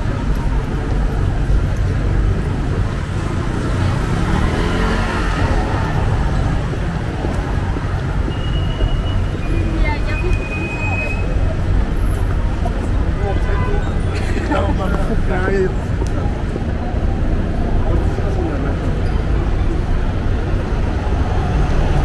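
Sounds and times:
passersby's voices: 0.0 - 22.0
road traffic rumble: 0.0 - 22.0.

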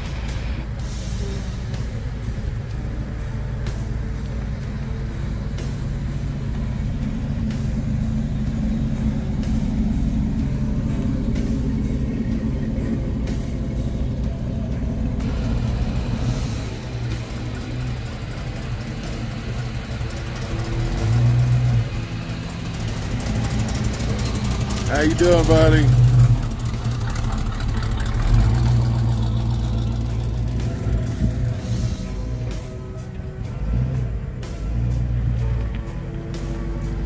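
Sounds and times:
car engine exhaust rumble: 0.0 - 37.0.

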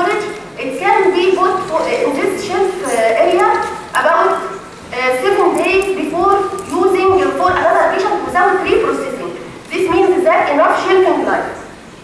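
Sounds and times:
woman lecturing: 0.0 - 11.7.

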